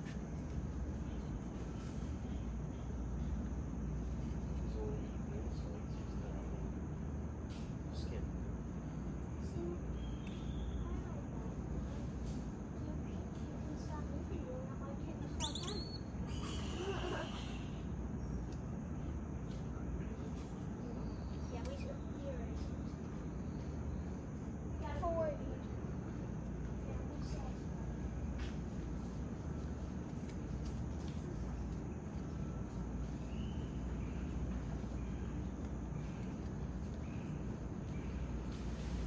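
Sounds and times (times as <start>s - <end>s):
high-pitched insect drone: 15.4s - 17.7s
faint short calls: 15.4s - 17.9s.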